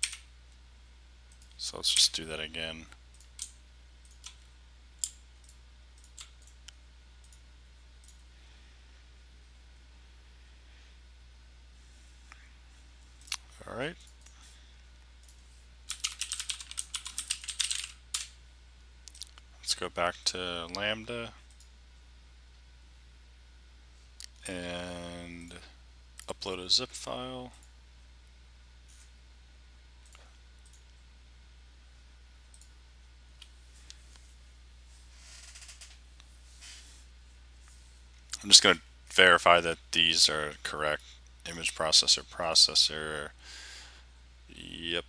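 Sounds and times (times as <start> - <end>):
computer keyboard typing: 0.0 - 0.2, 3.1 - 4.4, 5.0 - 6.6, 15.2 - 18.3
steady low hum: 0.0 - 45.0.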